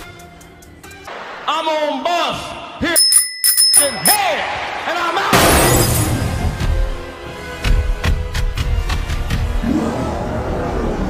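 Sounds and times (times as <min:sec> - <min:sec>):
bright bell-like ding: 0:03.0 - 0:04.3.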